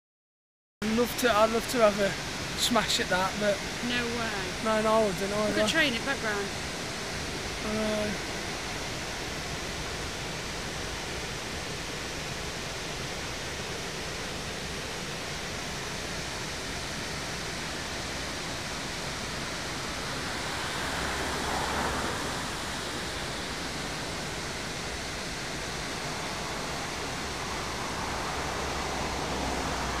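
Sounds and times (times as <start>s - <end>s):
water rushing over weir: 0.8s - 30.0s.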